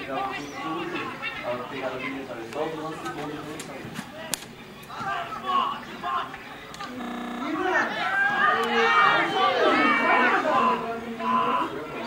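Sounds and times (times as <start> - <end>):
people calling out and talking: 0.0 - 12.0
short buzzing tone: 6.9 - 7.9.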